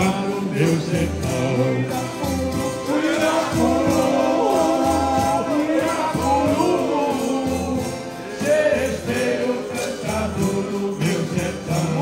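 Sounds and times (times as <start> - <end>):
accordion music: 0.0 - 12.0
man singing into a microphone: 0.0 - 12.0
maraca shaking: 0.0 - 12.0
people singing along: 0.0 - 12.0.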